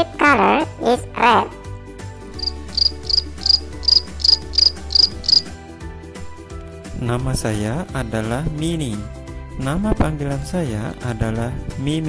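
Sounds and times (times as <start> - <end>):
high cricket-like chirps: 2.4 - 5.6.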